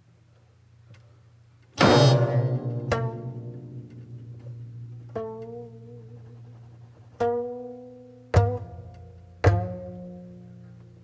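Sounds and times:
plucked zither stroke: 1.8s - 7.7s.

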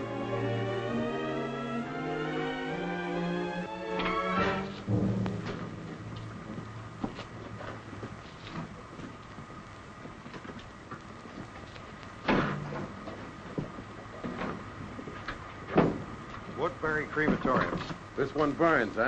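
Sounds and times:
orchestral film music: 0.0s - 7.0s
low held note: 4.4s - 8.2s
loud thump: 4.8s - 7.8s.

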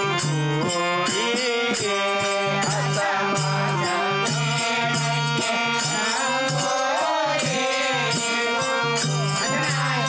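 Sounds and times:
person chanting a devotional song: 0.0s - 10.0s
steady percussion beat: 0.0s - 10.0s
sustained instrumental tones: 0.0s - 10.0s.

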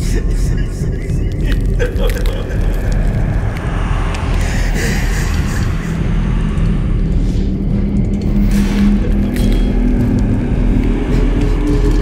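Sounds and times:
horror soundtrack low drone: 0.0s - 12.0s.

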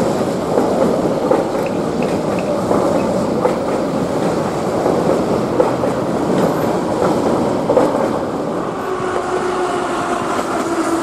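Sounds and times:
train wheels rumbling on rails: 0.0s - 11.0s
wheels clacking on rail joints: 0.5s - 8.3s.

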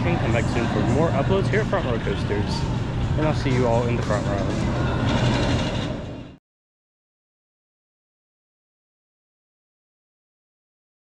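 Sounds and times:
steady low hum: 0.0s - 6.4s.

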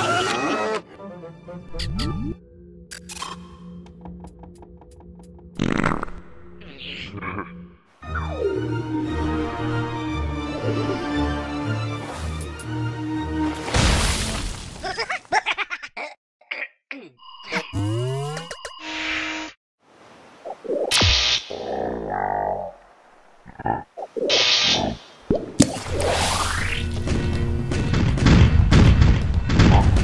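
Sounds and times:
cartoon music: 6.6s - 9.4s
cartoon voice coughing: 16.0s - 17.2s.

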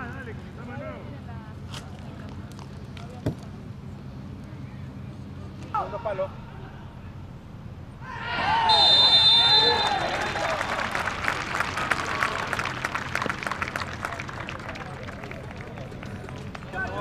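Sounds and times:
young players shouting in celebration: 8.0s - 10.7s
high whistle-like tone: 8.6s - 10.1s.

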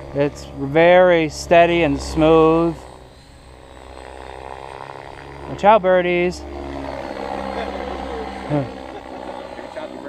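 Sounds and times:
remote control helicopter humming: 0.0s - 10.0s.

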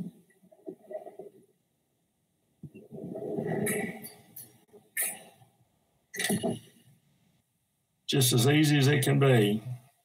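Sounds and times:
man's mouth noises: 2.6s - 5.4s.

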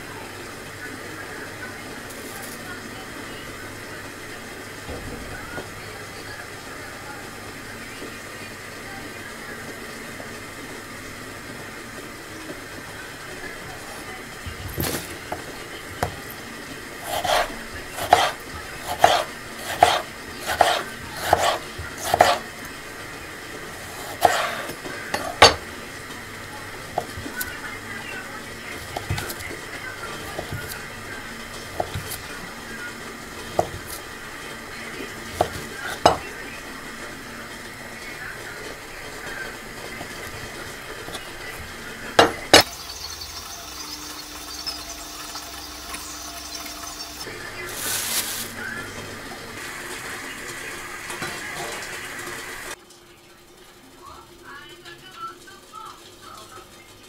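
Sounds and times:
knife cutting on wooden board: 17.0s - 22.4s, 23.9s - 25.6s.

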